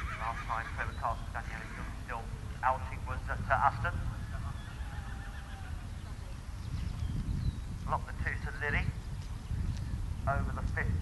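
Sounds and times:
distant horse whinny: 0.0 - 1.0, 1.6 - 2.1, 4.2 - 6.1
wind on microphone: 0.0 - 11.0.

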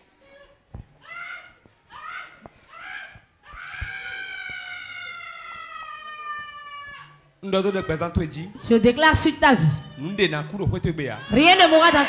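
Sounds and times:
woman's high-pitched wail: 1.1 - 7.2.

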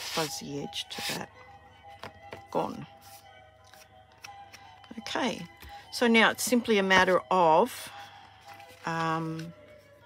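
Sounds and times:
card stock being handled: 0.0 - 0.4
quiet background music: 0.0 - 10.0.

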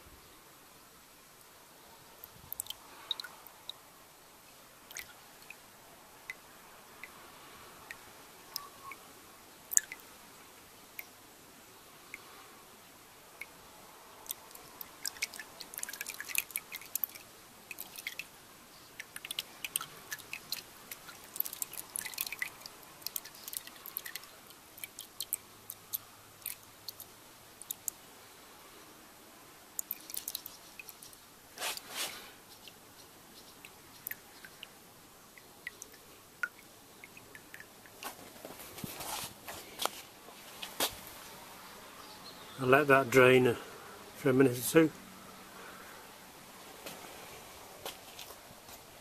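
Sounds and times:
fuel dripping into pool: 2.2 - 3.9, 4.5 - 9.1, 9.7 - 10.2, 13.4 - 28.0, 29.7 - 31.9, 32.6 - 38.1.

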